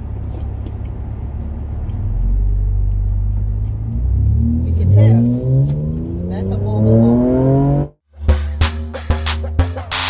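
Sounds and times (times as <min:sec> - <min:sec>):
car engine accelerating: 0:00.0 - 0:08.7
music with heavy drum beat: 0:08.2 - 0:10.0.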